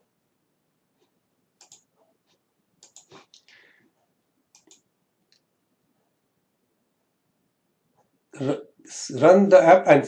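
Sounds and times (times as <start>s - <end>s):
man speaking: 8.4s - 10.0s.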